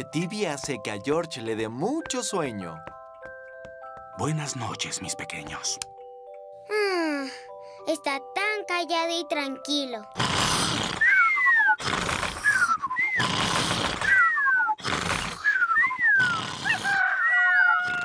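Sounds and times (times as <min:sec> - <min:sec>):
cartoon pigs snoring: 0:10.1 - 0:18.0.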